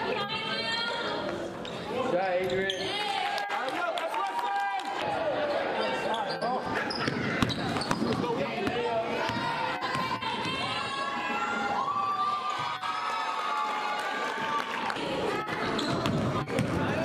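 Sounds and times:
basketball bouncing on hardwood floor: 15.9s - 17.0s.

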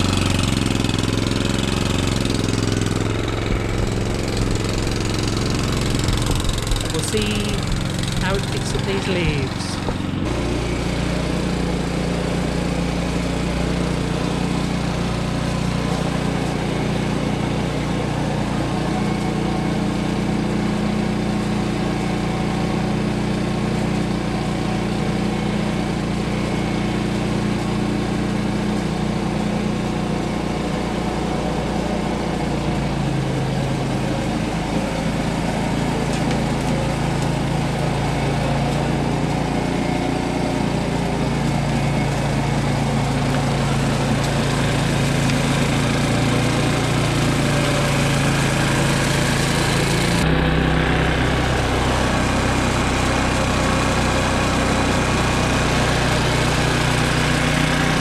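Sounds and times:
lawn mower engine running: 0.0s - 58.0s.

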